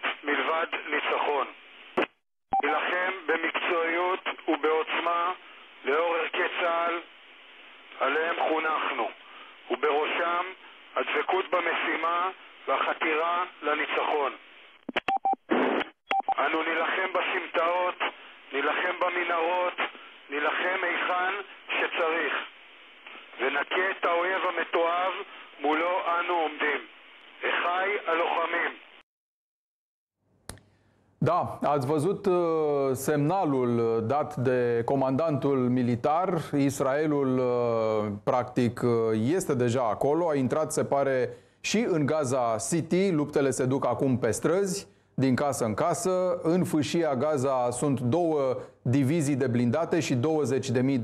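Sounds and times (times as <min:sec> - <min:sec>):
radio-like speech: 0:00.0 - 0:07.1, 0:07.9 - 0:14.5, 0:16.2 - 0:29.0.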